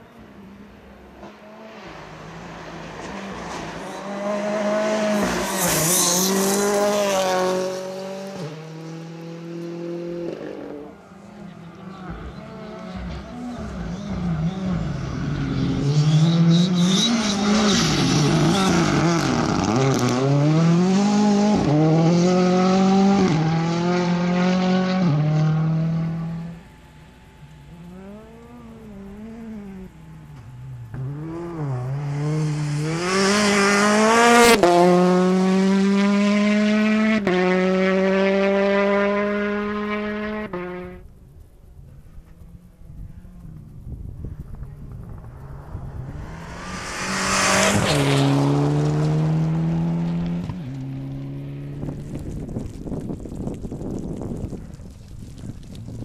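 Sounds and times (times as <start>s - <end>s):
rally car engine revving: 1.1s - 41.1s, 42.3s - 52.8s.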